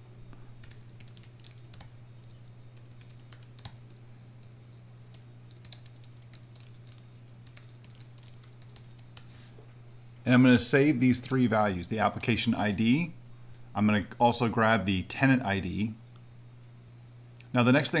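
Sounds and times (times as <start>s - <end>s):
steady low hum: 0.0s - 18.0s
computer keyboard typing: 0.5s - 9.3s.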